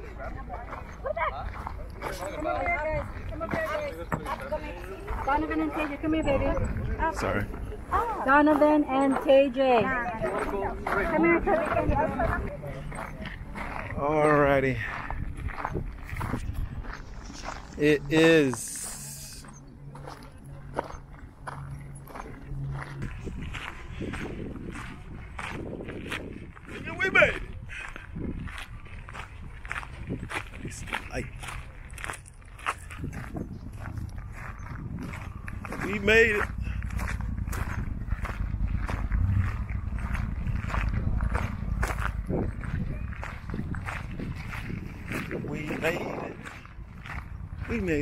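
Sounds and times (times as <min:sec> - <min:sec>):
wind rumbling on microphone: 0:00.0 - 0:08.2, 0:10.0 - 0:18.0, 0:21.8 - 0:48.0
footsteps on gravel: 0:00.0 - 0:48.0.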